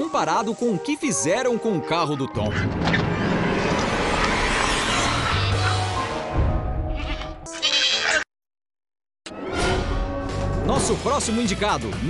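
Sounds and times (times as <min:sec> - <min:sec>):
background music: 0:00.0 - 0:03.4, 0:09.3 - 0:12.0
goat bleating: 0:07.5 - 0:08.2.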